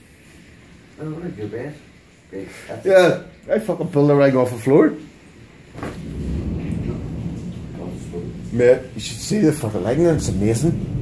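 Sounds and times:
thunder rumbling: 5.4s - 11.0s.

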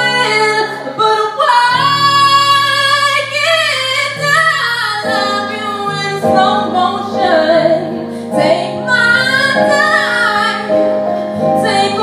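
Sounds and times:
sustained keyboard chords: 0.0s - 12.0s
woman singing sliding notes: 0.0s - 12.0s.

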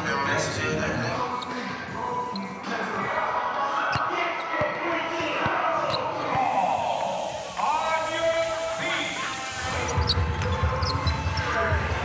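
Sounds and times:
voices: 1.2s - 11.7s.

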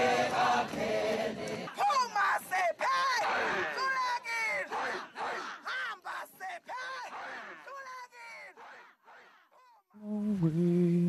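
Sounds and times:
voices chanting: 0.0s - 9.8s.

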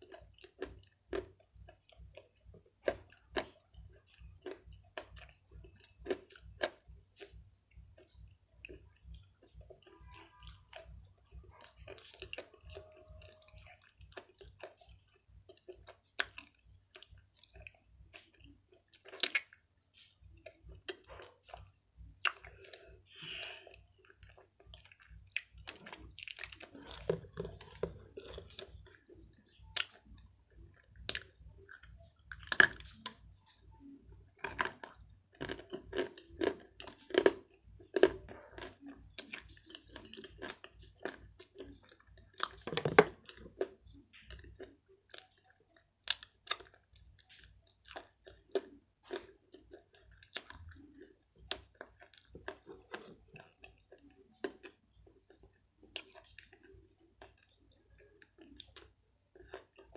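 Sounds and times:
wet chewing mouth sounds: 0.0s - 59.9s.

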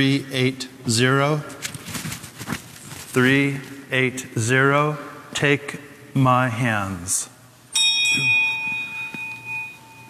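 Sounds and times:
bell ringing: 7.8s - 10.0s.

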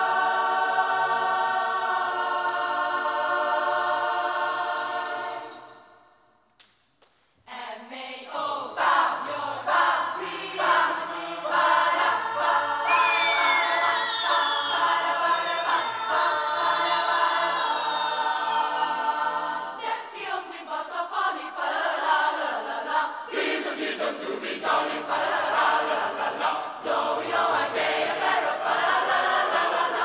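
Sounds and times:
youth choir singing a cappella: 0.0s - 6.2s, 7.4s - 30.0s.

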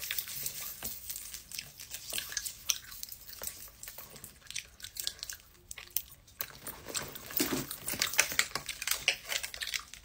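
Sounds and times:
person chewing crunchy snack: 0.0s - 10.0s.

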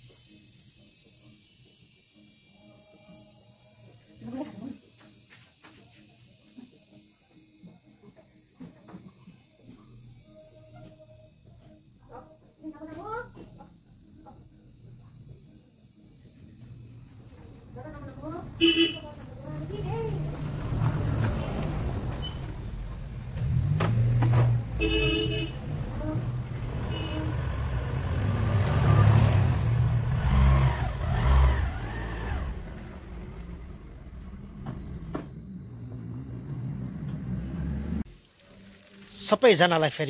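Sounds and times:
horn toots: 18.6s - 19.2s, 24.6s - 28.6s
scooter engine revving: 19.6s - 38.1s.

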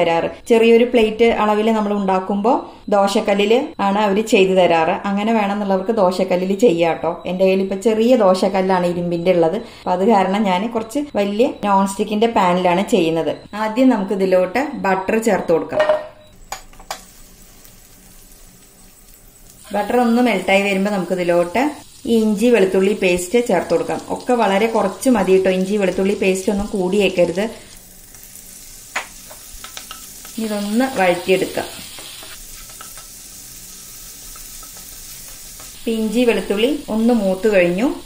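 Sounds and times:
butter sizzling: 16.4s - 38.0s.

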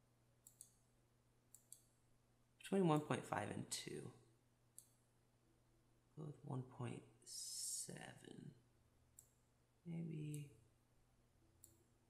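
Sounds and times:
computer mouse click: 0.4s - 0.8s, 1.5s - 1.9s, 4.7s - 5.0s, 11.6s - 11.9s.

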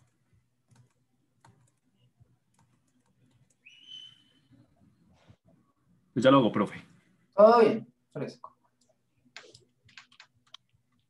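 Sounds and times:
computer keyboard clicks: 9.3s - 10.7s.

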